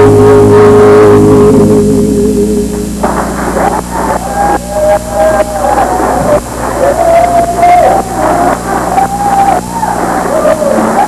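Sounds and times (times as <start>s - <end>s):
live band holding chord: 0.0s - 11.0s
audience clapping and cheering: 3.0s - 11.0s.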